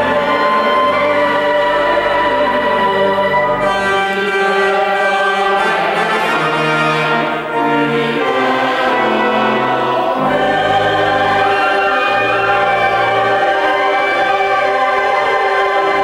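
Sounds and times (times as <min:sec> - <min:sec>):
choir singing sustained chords: 0:00.0 - 0:16.0.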